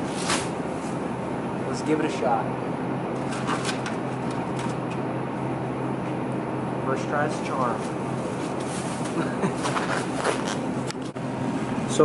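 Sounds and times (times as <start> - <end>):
supermarket hum and hiss: 0.0 - 12.0.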